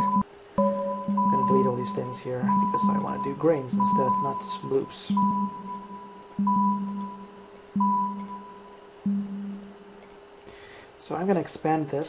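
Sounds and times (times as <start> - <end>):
electronic sine beeps: 0.0 - 9.8.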